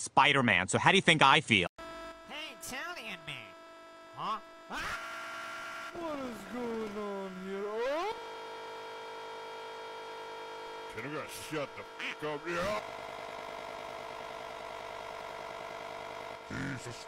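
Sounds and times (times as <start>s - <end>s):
constant hum: 1.9s - 17.0s.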